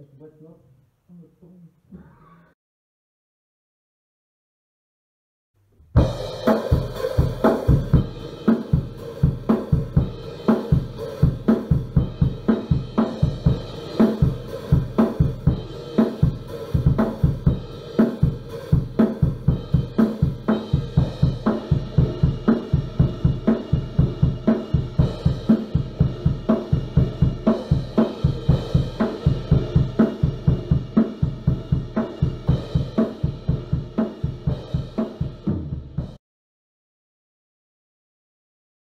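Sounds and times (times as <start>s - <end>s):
drum kit playing fast groove: 6.0s - 36.2s.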